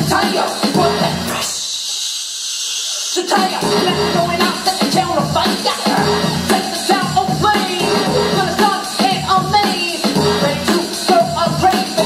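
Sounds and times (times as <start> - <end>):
hip hop dance music: 0.0 - 12.0.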